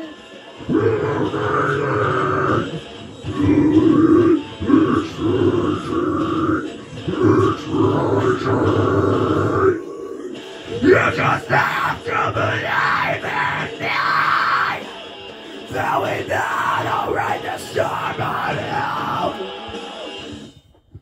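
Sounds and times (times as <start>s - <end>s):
man growling metal vocals: 0.6s - 14.9s, 15.6s - 19.5s.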